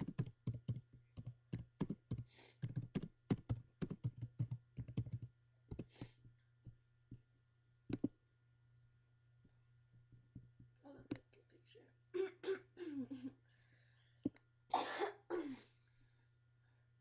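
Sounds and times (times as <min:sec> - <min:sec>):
rapid taps and clicks: 0:00.0 - 0:07.2, 0:07.9 - 0:08.2.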